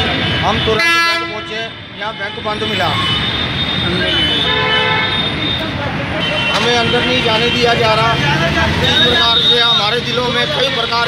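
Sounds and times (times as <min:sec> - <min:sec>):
man talking: 0:00.0 - 0:03.2, 0:05.5 - 0:11.0
road traffic: 0:00.0 - 0:11.0
vehicle horn: 0:00.1 - 0:01.7, 0:02.7 - 0:07.7.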